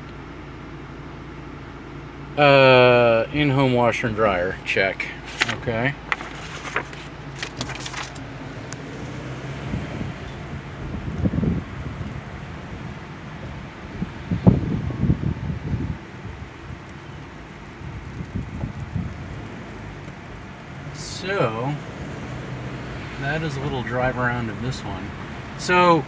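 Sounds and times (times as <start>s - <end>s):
car engine and road hum: 0.0s - 26.0s
paper crackling: 5.2s - 8.3s.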